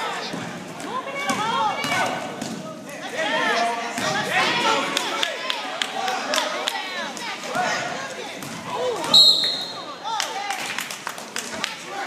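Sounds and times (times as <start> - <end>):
referee's whistle blast: 9.1 - 9.9.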